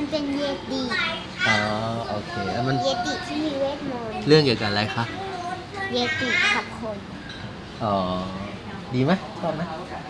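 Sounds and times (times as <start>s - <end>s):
girl talking: 0.0s - 1.5s, 2.4s - 4.2s, 5.1s - 7.1s.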